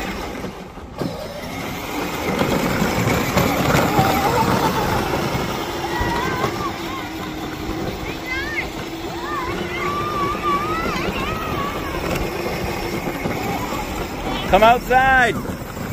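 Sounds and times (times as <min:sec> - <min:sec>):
electric motors whining: 0:00.0 - 0:15.9
plastic wheels rolling over grass: 0:00.0 - 0:15.9.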